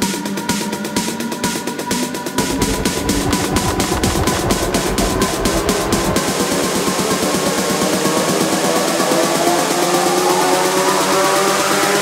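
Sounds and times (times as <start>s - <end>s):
pulsing synth pattern: 2.4s - 6.4s
rising synth sweep: 2.4s - 6.8s.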